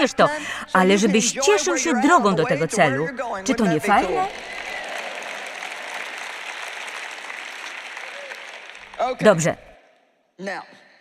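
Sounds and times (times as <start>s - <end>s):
audience applauding: 3.5s - 9.7s.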